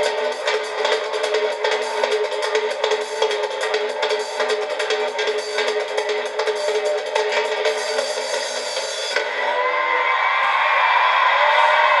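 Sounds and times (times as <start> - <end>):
live band with drums and cymbals: 0.0 - 9.3.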